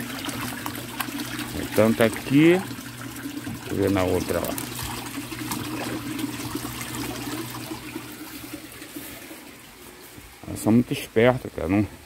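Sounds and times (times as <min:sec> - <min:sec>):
water trickling and splashing: 0:00.0 - 0:11.0
water system hum: 0:00.0 - 0:12.0.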